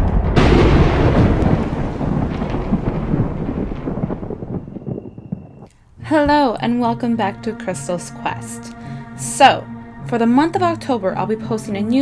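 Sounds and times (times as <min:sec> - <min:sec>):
thunder crack and rumble: 0:00.0 - 0:05.7.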